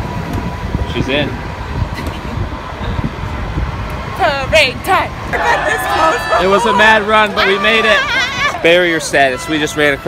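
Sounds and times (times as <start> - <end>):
low rumble of street traffic: 0.0 - 10.0
wind buffeting microphone: 0.0 - 10.0.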